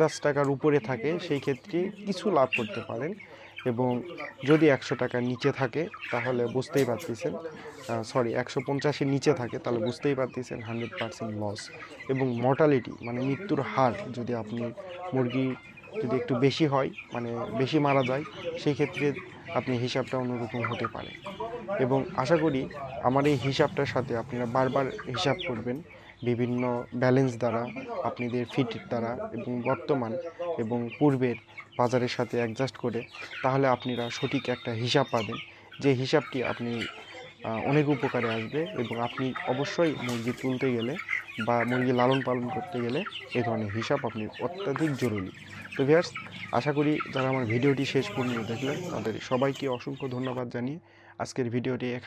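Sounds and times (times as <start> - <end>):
chickens clucking: 0.0 - 52.0
man talking: 0.0 - 52.0.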